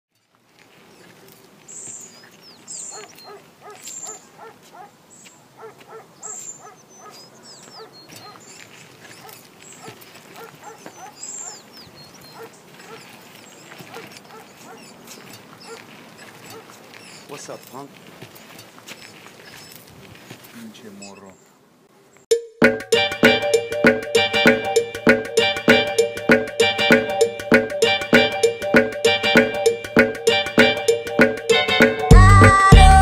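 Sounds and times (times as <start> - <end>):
quiet outdoor background noise: 0.1 - 22.4
high chirping calls: 0.8 - 19.9, 20.8 - 21.6
dog barking: 2.9 - 11.7, 12.3 - 16.8.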